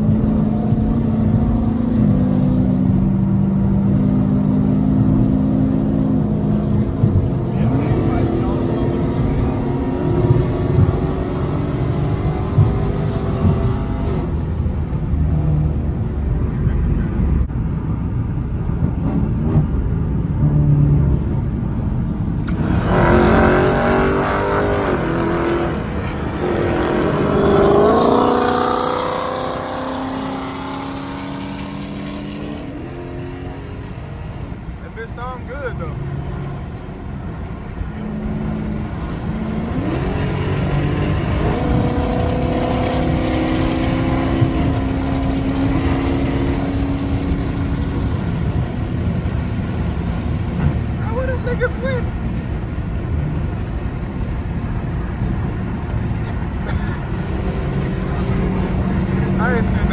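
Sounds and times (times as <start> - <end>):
car engine accelerating: 0.0 - 59.9.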